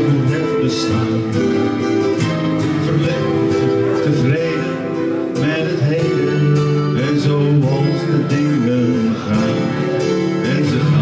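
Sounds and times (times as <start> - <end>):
acoustic guitar strumming: 0.0 - 11.0
electric guitar melody: 0.0 - 11.0.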